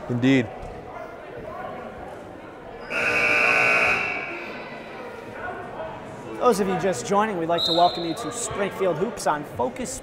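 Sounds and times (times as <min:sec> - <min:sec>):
scoreboard buzzer blast: 0:02.8 - 0:04.4.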